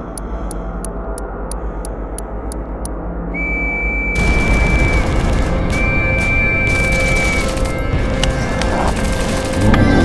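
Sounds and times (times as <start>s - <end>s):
low music drone: 0.0s - 10.0s
rumble of explosions: 0.9s - 10.0s
whistle blasts: 3.3s - 7.6s.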